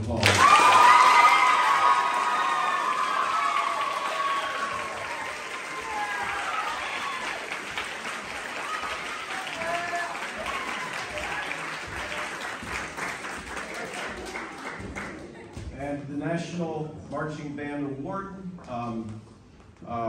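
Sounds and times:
audience applauding: 0:00.0 - 0:15.6.

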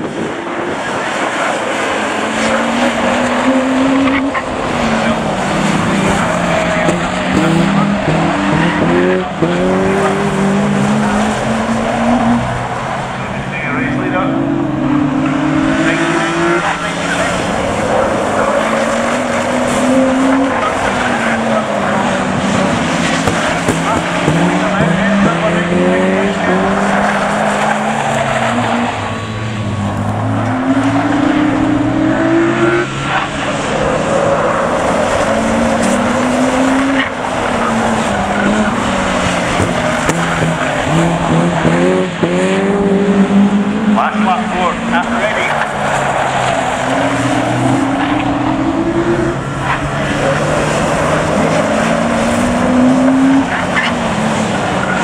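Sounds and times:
racing car engines revving: 0:00.0 - 0:55.0.

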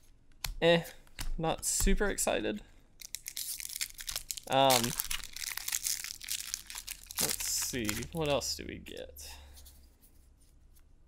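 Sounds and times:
cards rustling in hands: 0:03.0 - 0:10.9.

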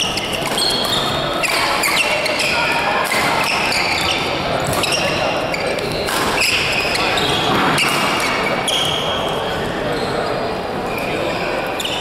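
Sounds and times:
shoe squeaks on court: 0:00.0 - 0:12.0.

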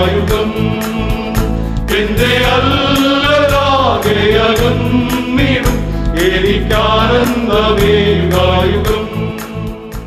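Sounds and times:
men's choir singing a hymn: 0:00.0 - 0:10.0.

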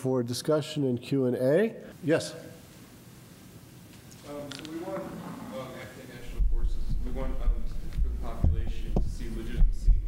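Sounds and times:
man asking a question: 0:00.0 - 0:02.6, 0:04.2 - 0:10.0
heavy low rumble: 0:06.2 - 0:10.0.

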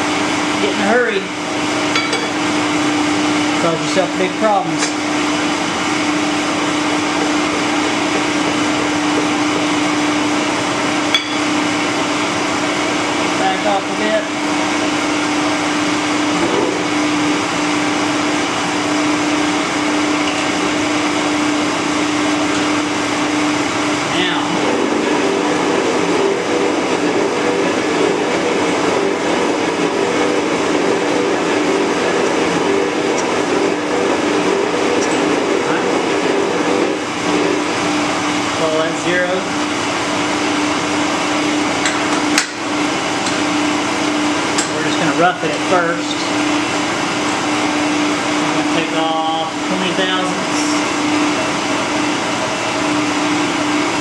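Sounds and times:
electric motor humming and whirring: 0:00.0 - 0:54.0.

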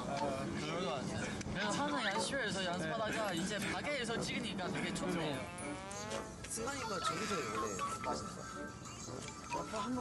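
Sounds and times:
people talking: 0:00.0 - 0:05.5, 0:06.5 - 0:08.5.

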